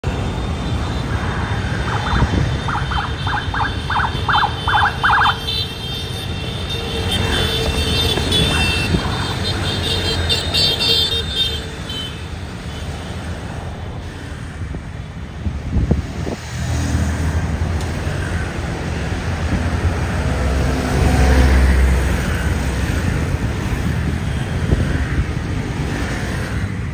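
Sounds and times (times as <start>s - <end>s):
scooters and cars passing: 0.0s - 26.9s.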